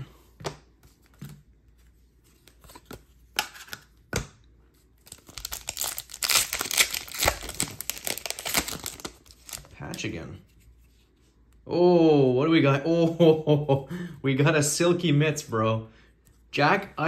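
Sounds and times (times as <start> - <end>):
foil wrapper crinkling and tearing: 5.0 - 9.8.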